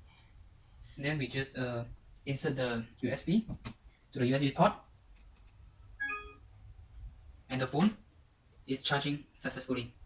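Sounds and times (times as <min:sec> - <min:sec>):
smartphone charging chime: 0:06.0 - 0:06.4.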